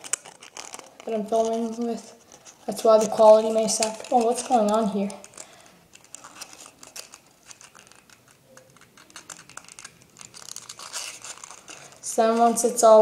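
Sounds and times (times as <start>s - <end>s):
paper rustling and crinkling: 0.0s - 13.0s.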